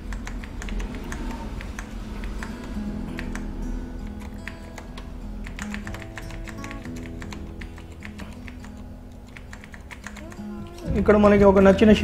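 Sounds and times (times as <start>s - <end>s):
computer keyboard keys clicking: 0.0s - 10.9s
quiet background music: 0.0s - 12.0s.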